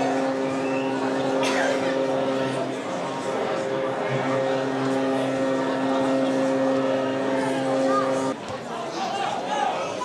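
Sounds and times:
steady mechanical drone: 0:00.0 - 0:08.4
faint voices: 0:00.0 - 0:10.0.

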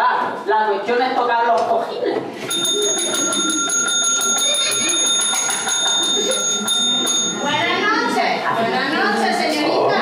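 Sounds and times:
service bell ringing: 0:02.4 - 0:08.2.

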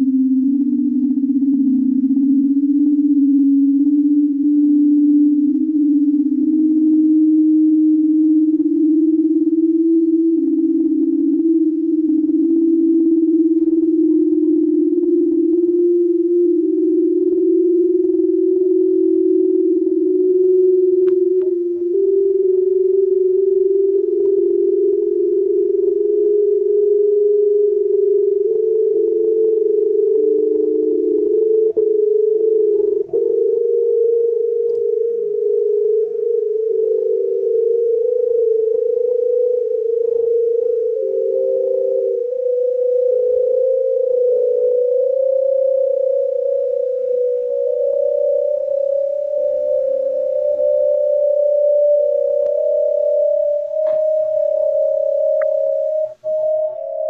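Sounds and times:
synthesised pure tones climbing: 0:00.0 - 0:57.0.

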